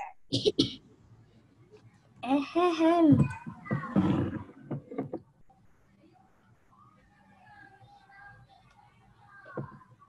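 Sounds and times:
person coughing: 0.3 - 0.8.

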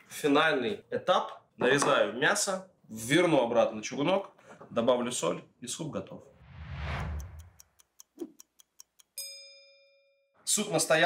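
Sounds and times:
clock ticking: 7.0 - 9.2
bell ding: 9.2 - 10.3.

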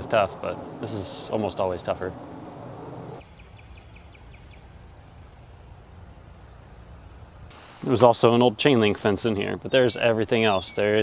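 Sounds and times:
bird chirping: 0.0 - 7.5, 8.4 - 11.0
outdoor background noise: 0.0 - 11.0.

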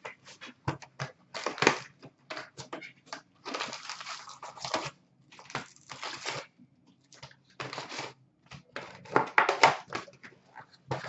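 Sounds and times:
foil wrappers crinkling: 3.4 - 8.2.

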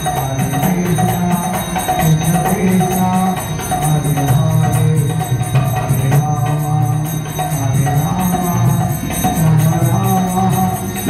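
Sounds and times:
devotional melody: 0.0 - 11.0
ringing hand cymbals: 0.0 - 11.0.

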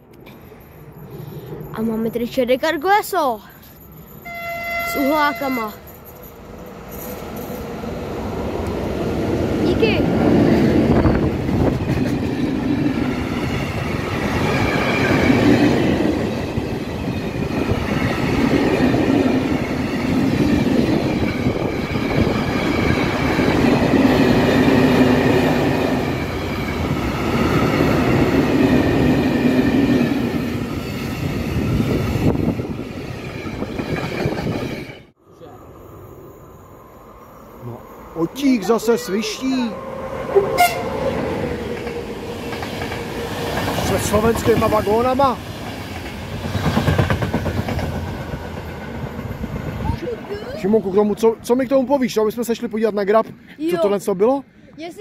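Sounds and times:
train horn blast: 4.2 - 5.8, 40.3 - 41.2
freight wagons rolling past: 37.5 - 53.3.

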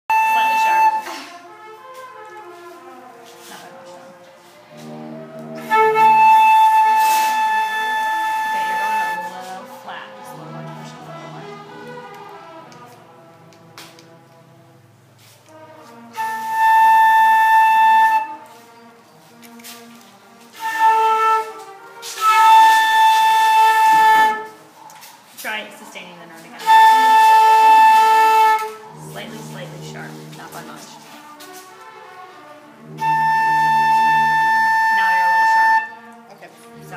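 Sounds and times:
flute sustained note: 0.1 - 25.2, 26.6 - 36.9.

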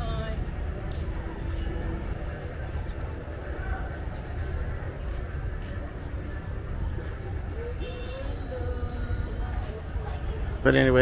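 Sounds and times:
distant city noise: 0.0 - 11.0
faint far-off voices: 0.0 - 11.0.

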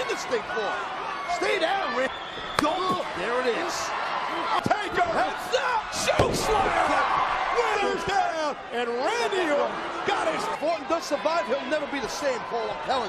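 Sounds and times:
people shouting: 0.0 - 8.5.

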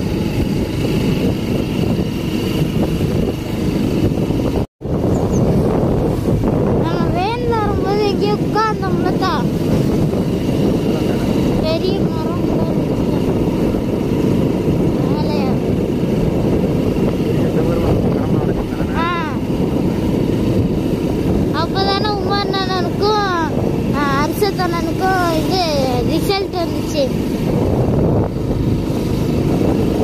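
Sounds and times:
motorcycle engine running: 0.0 - 30.0
wind rushing over microphone: 0.0 - 30.0
person talking: 6.8 - 9.5, 18.3 - 19.5, 21.5 - 27.2.

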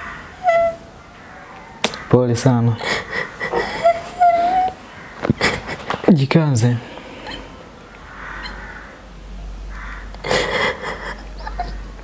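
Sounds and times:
person sobbing: 2.8 - 6.0, 10.2 - 12.0.

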